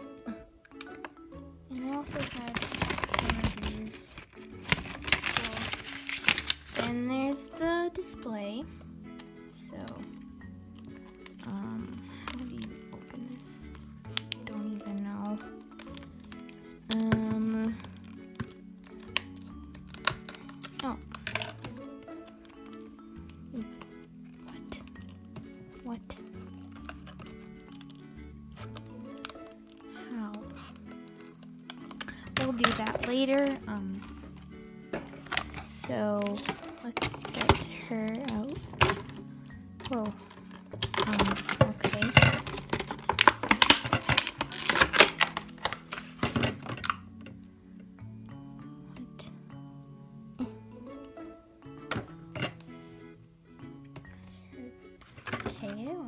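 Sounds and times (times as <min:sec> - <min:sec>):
background music: 0:00.0 - 0:56.0
plastic blister package clicks: 0:15.6 - 0:22.8, 0:28.6 - 0:33.6, 0:35.0 - 0:39.2, 0:39.8 - 0:47.0.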